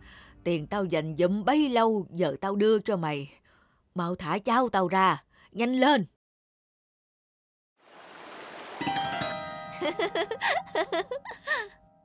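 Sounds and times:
young man laughing: 0:09.8 - 0:11.7.

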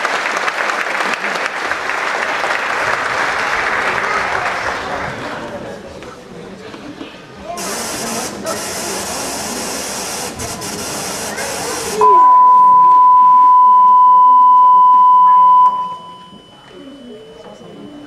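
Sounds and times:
audience applause: 0:00.0 - 0:05.7
voices: 0:03.8 - 0:18.0
steady test tone beep: 0:12.0 - 0:18.0.

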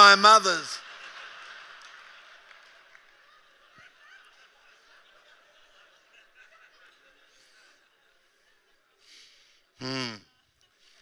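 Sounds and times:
scattered clapping: 0:00.0 - 0:04.7
audience laughter: 0:00.0 - 0:09.5.

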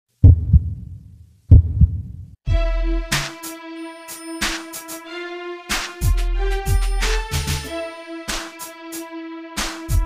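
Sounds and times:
heartbeat thumps: 0:00.2 - 0:02.7.

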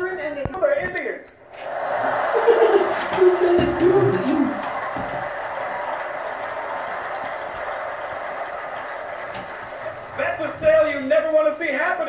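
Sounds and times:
audience laughter: 0:01.5 - 0:10.6
audience applause: 0:01.5 - 0:11.4.

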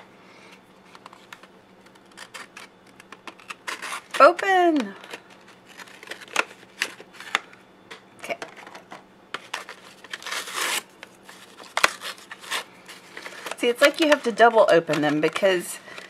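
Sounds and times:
cardboard tearing: 0:01.8 - 0:04.7, 0:09.6 - 0:14.4.

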